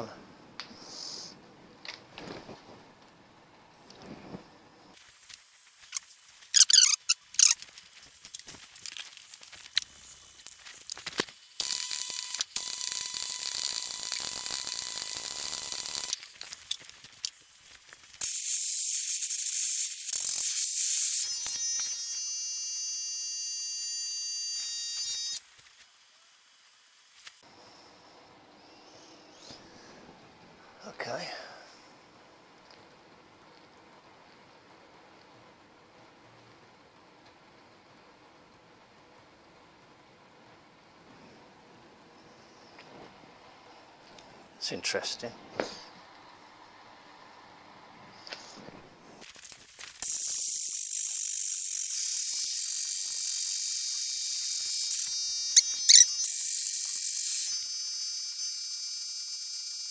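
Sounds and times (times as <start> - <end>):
arc welding crackling hiss: 4.9 - 27.4, 48.1 - 59.9.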